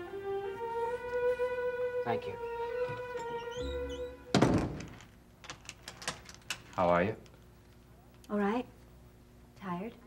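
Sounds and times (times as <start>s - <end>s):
door shutting thunk: 3.6s - 5.1s.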